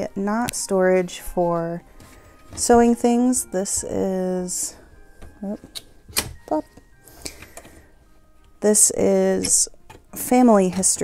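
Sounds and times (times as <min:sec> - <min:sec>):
metal latch clicks: 0:05.2 - 0:06.5.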